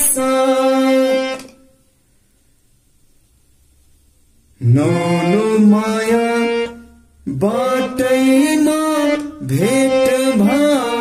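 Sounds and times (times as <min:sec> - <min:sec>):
harmonium playing held notes: 0:00.0 - 0:01.5, 0:04.8 - 0:11.0.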